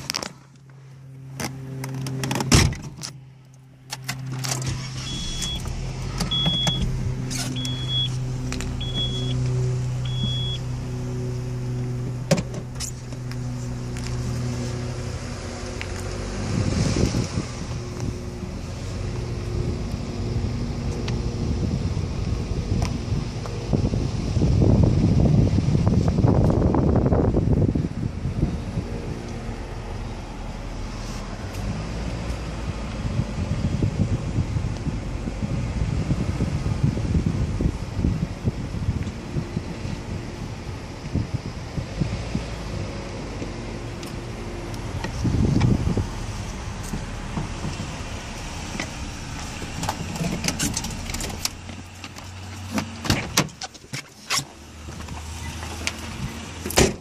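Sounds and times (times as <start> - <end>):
car engine: 0.0 - 57.0
road noise: 0.0 - 57.0
car warning chime beeps: 5.0 - 10.7
car thump: 12.2 - 13.2, 56.7 - 57.0.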